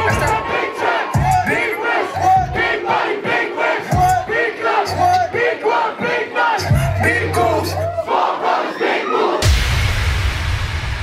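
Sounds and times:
hip-hop track deep bass: 0.0 - 8.0
crowd shouting along: 0.0 - 9.5.

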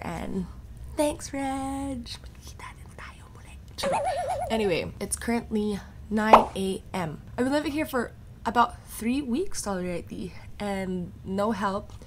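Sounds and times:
woman whispering: 2.4 - 3.7.

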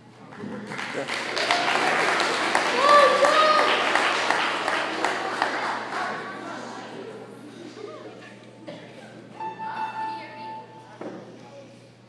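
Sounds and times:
audience applause: 0.3 - 6.9.

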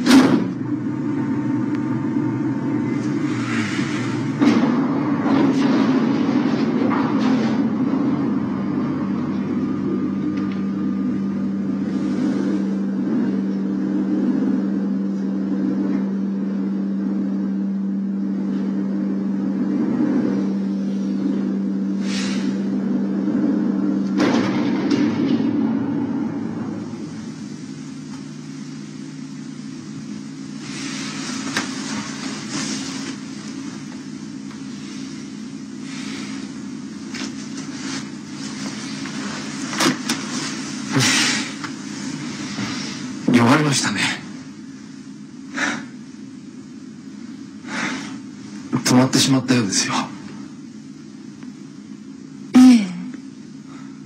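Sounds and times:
elevator hum: 0.0 - 54.0.

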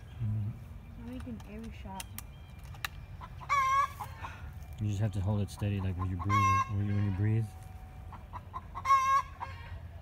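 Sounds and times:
chicken squawk: 3.2 - 4.5, 6.0 - 7.3, 8.1 - 9.9.

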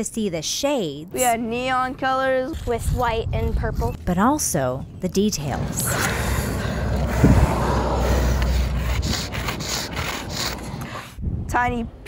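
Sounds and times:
microphone rumble: 4.8 - 11.6
chalk scraping on concrete: 7.2 - 11.2.

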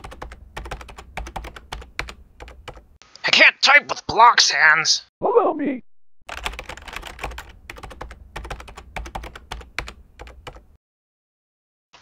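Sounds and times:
computer keyboard typing: 0.0 - 2.8, 6.3 - 10.7.

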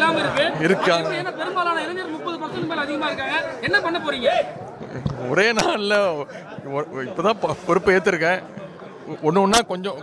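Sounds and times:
crowd of voices chattering: 0.0 - 10.0.

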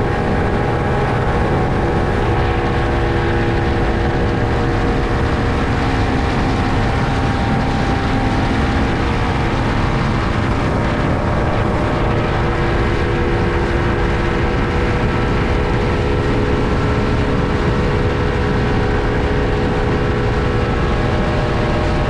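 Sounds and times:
motorboat engine drone: 0.0 - 22.0
water rushing from wake: 0.0 - 22.0.

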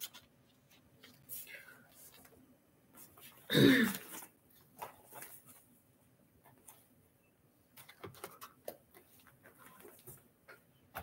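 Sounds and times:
woman clearing her throat: 3.5 - 4.1.

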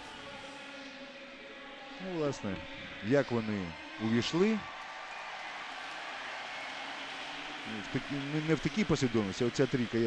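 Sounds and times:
faint spectator crowd noise: 0.0 - 10.0.

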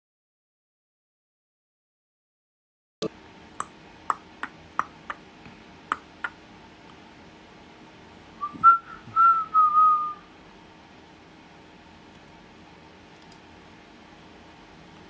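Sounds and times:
person whistling: 8.4 - 10.2.

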